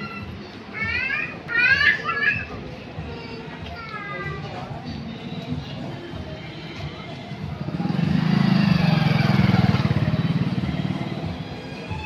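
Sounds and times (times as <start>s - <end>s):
motorcycle engine passing: 7.5s - 11.5s.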